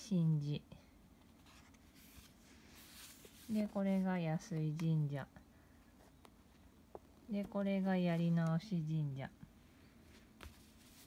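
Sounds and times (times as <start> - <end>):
paper rustling and sliding: 1.4 - 3.7, 10.1 - 11.0.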